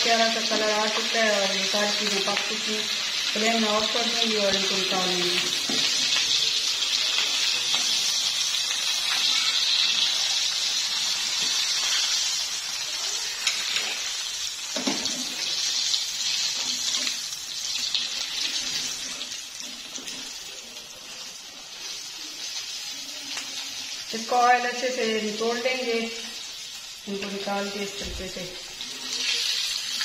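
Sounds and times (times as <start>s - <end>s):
food deep-frying in oil: 0.0s - 30.0s.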